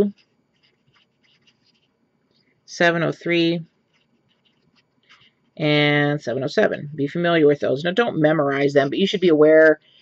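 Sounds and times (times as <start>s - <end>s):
marker pen scratching on paper: 0.0s - 2.0s, 3.8s - 5.5s.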